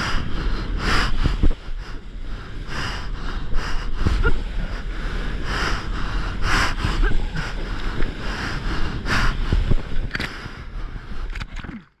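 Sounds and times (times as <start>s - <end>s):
wind buffeting microphone: 0.0s - 11.8s
sharp splashes: 11.3s - 12.0s.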